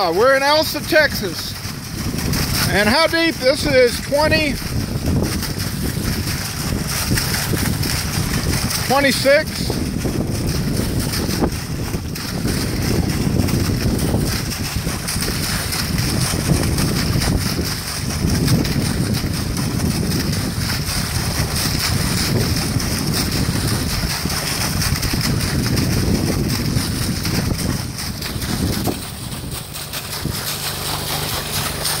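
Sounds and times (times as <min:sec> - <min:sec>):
water slurry gushing from pipe: 0:00.0 - 0:32.0
wind buffeting microphone: 0:00.0 - 0:32.0.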